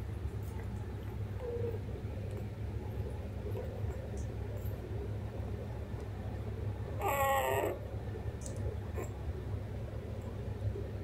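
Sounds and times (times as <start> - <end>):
steady low hum: 0.0 - 11.0
puppy whimpering: 7.0 - 7.8.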